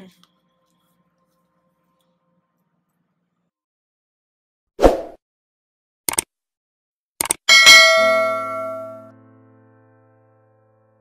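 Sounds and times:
bell ding: 7.5s - 9.1s.

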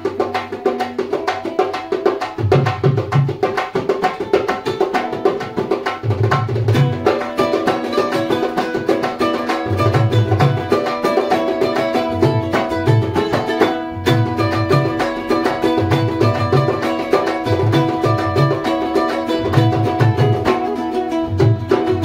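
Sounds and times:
ukulele strumming: 0.0s - 22.0s.

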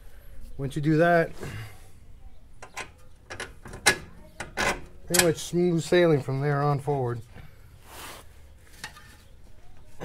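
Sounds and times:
scraping and rustling of tools: 7.8s - 10.0s.

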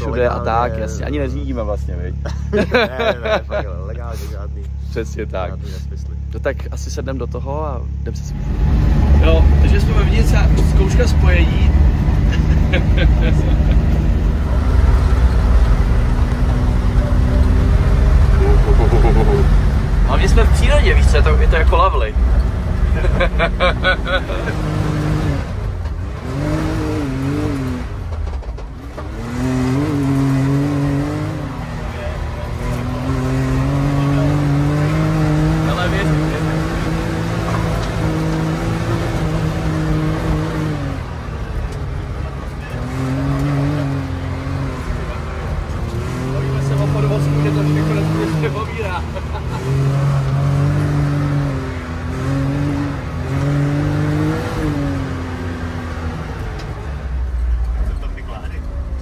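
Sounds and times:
off-road vehicle engine revving: 0.0s - 59.0s.

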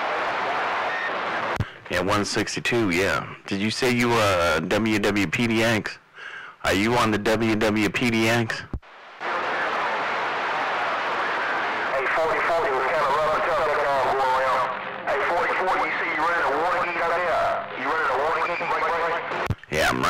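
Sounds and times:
radio hiss and static: 8.1s - 20.0s
distant voice over cb radio: 11.9s - 19.5s.

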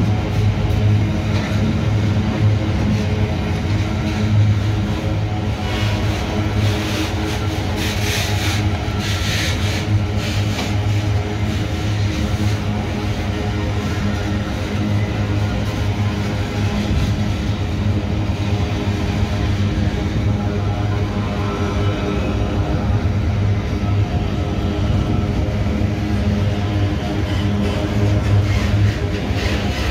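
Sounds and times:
freight wagons rumbling on rails: 0.0s - 29.9s.

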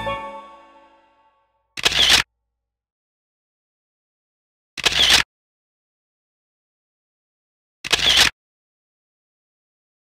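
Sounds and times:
background music: 0.0s - 1.6s
camera shutter sound: 1.8s - 2.3s, 4.8s - 5.3s, 7.8s - 8.4s.

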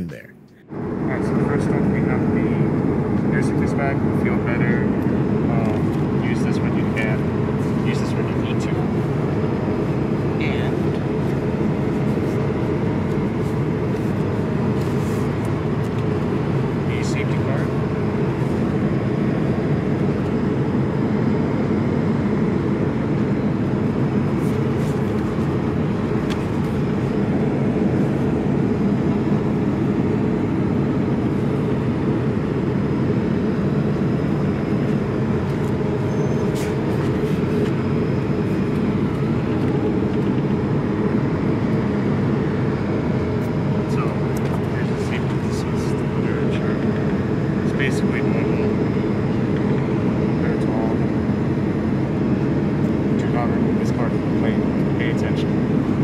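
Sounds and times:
airplane cabin roar: 0.0s - 56.0s.

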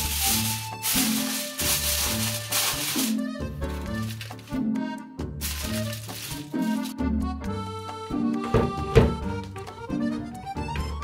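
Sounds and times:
aluminium foil crinkling: 0.0s - 4.6s, 5.4s - 7.0s
background music: 0.0s - 11.0s.

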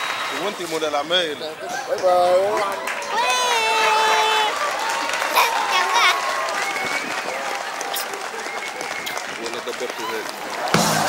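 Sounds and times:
faint voices: 0.0s - 10.7s
hands clapping in applause: 0.0s - 11.0s.

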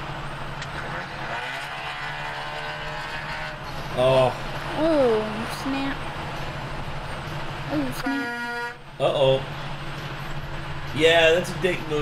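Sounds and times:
diesel truck engine under load: 0.0s - 8.1s.

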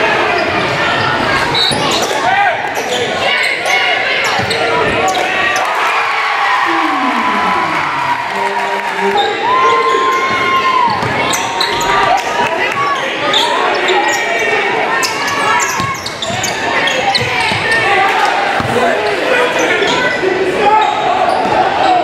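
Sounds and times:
crowd and player voices: 0.0s - 22.0s
basketball bouncing on hardwood: 10.9s - 11.2s.

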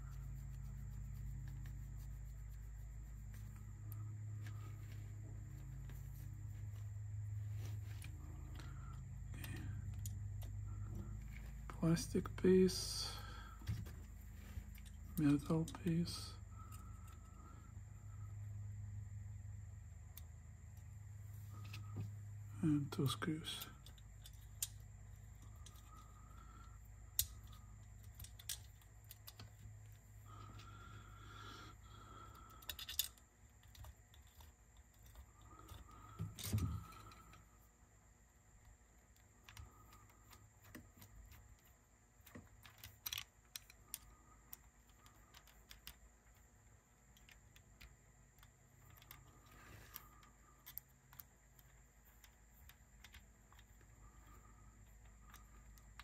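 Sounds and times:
screwdriver and metal parts clicking: 23.4s - 26.2s, 27.1s - 30.0s, 32.3s - 37.4s, 39.1s - 46.4s, 47.1s - 56.0s.

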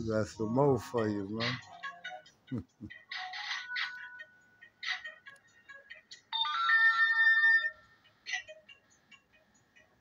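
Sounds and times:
tinny music from phone speaker: 0.0s - 10.0s.

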